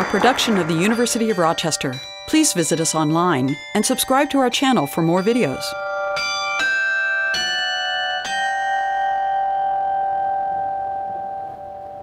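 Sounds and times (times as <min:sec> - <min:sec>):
bell-like chime notes: 0:00.0 - 0:12.0.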